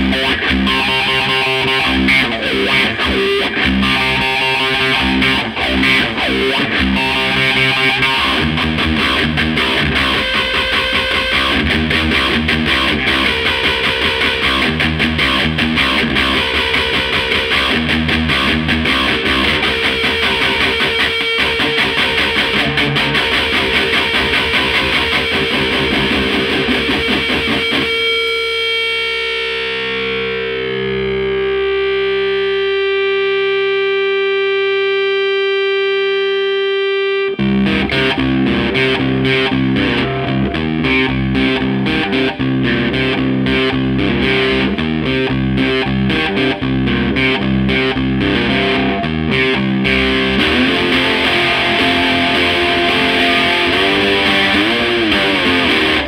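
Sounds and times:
distorted guitar riffing: 0.0 - 56.0.

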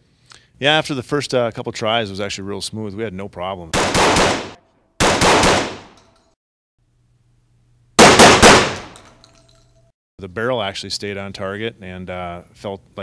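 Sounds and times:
shotgun firing: 3.8 - 6.0, 8.0 - 9.0.

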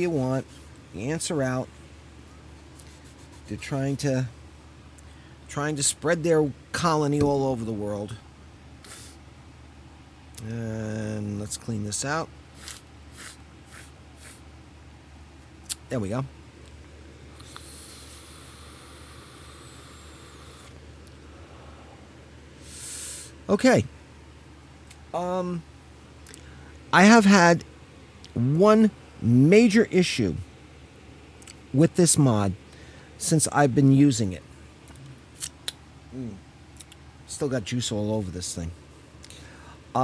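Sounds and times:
vaporizer air hiss: 2.8 - 4.0, 8.8 - 9.3, 12.5 - 14.6, 17.3 - 23.5
man humming: 17.4 - 20.8.

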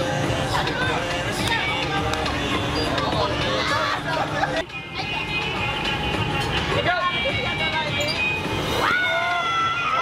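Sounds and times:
fairground music: 0.0 - 10.0
voices: 0.0 - 10.0.

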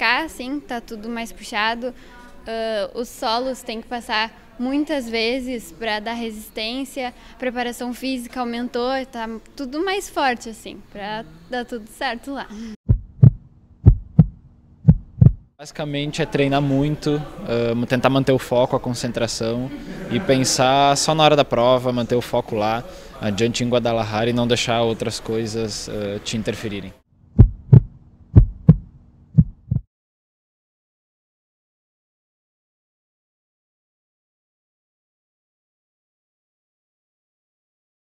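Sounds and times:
heartbeat thumps: 12.8 - 15.5, 27.4 - 29.9.

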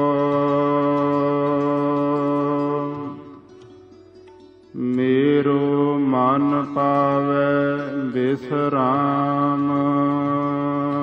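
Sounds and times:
person singing: 0.0 - 3.7, 4.7 - 11.0
harmonium: 0.0 - 11.0.

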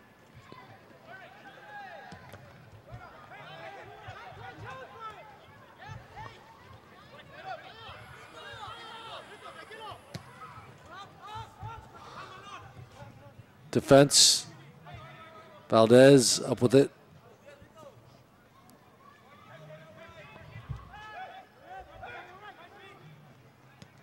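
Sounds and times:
distant people shouting: 2.9 - 12.7.

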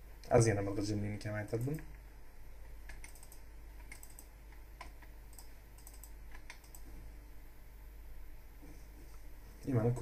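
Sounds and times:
steady low hum: 0.0 - 10.0
computer keyboard typing: 2.8 - 6.9.

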